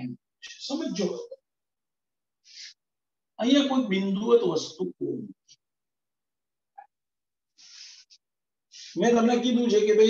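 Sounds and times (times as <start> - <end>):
man speaking: 0.0 - 1.4, 8.8 - 10.0.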